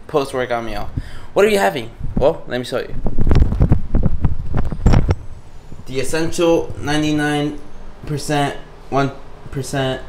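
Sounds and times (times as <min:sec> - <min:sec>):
camera handling rumble and rubbing: 0:03.0 - 0:05.3.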